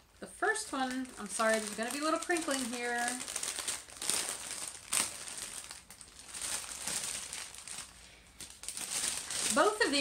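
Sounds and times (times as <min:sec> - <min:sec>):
plastic packaging crinkling: 0:00.3 - 0:10.0.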